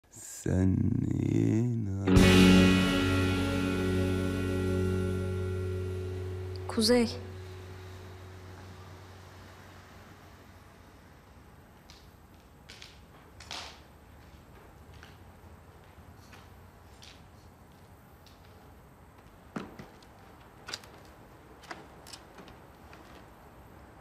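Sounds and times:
faint background hiss: 0.1s - 24.0s.

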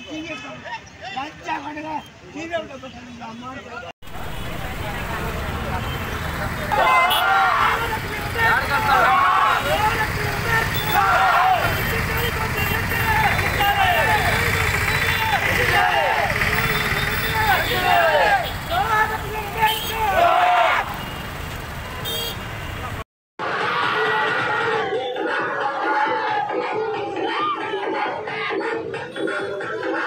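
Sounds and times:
crowd noise: 3.6s - 21.1s, 21.8s - 30.0s
traffic rumble: 4.0s - 23.0s
men shouting protest slogans: 4.2s - 21.0s.

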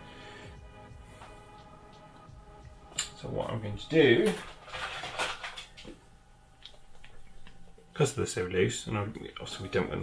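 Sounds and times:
small objects knocking and rustling: 4.2s - 6.0s.

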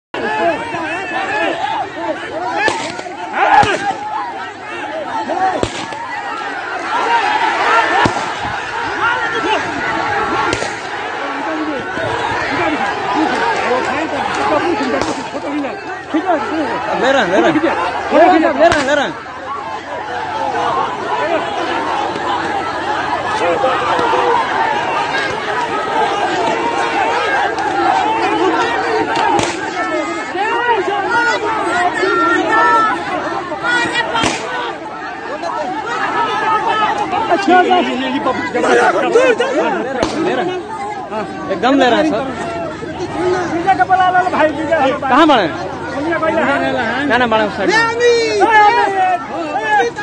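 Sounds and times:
crowd of men shouting: 0.2s - 50.0s.

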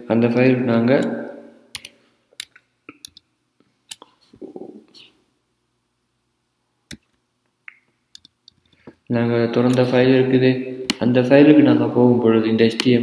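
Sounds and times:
keyboard and mouse clicks: 1.7s - 3.3s, 6.9s - 9.0s.

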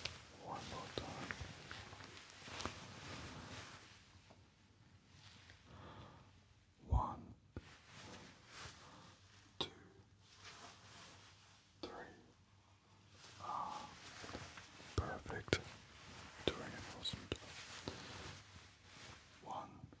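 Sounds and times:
soft close whispering: 0.0s - 4.4s, 5.1s - 20.0s.

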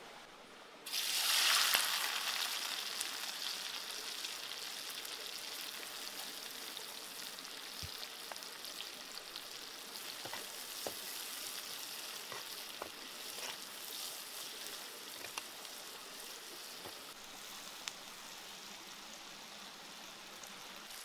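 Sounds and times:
sizzling in hot oil: 0.8s - 21.0s.

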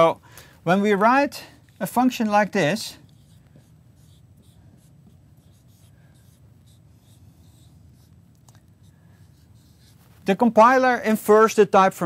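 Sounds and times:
low room hum: 0.0s - 12.0s
marker scratching on whiteboard: 0.9s - 10.4s.

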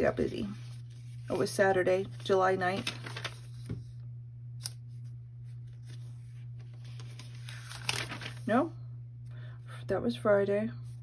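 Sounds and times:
paper pages rustling: 0.0s - 4.0s, 4.6s - 8.5s
steady low hum: 0.0s - 11.0s.

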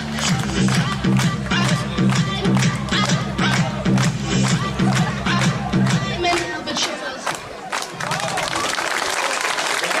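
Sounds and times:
dance music: 0.0s - 7.4s
voices in crowd: 0.9s - 10.0s
audience applause: 7.3s - 10.0s.

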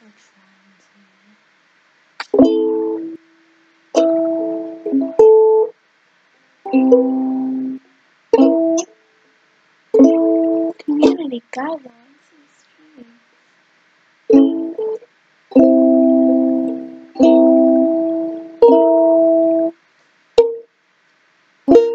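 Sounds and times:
ukulele single strums: 2.2s - 3.2s, 4.0s - 5.7s, 6.7s - 8.9s, 10.0s - 11.2s, 14.3s - 19.7s, 20.4s - 20.6s, 21.7s - 21.9s.

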